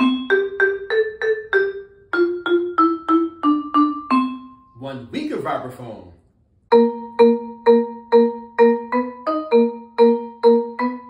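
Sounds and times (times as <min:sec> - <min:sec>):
vibraphone notes: 0:00.0 - 0:05.0, 0:06.7 - 0:11.0.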